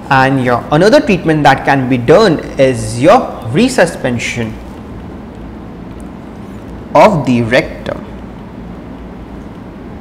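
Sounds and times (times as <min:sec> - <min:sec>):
low rumble with hiss: 0:00.0 - 0:10.0.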